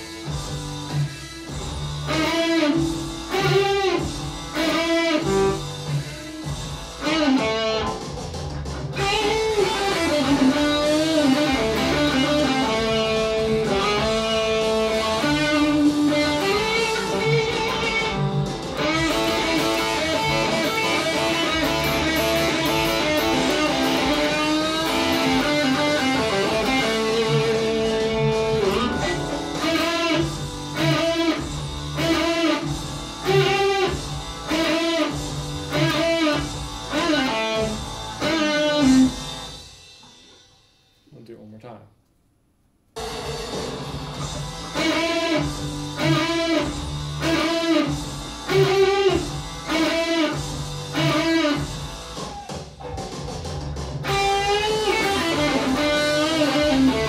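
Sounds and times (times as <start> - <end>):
distorted electric guitar solo: 0.0 - 8.0, 9.0 - 39.5, 43.0 - 52.6, 54.0 - 57.0.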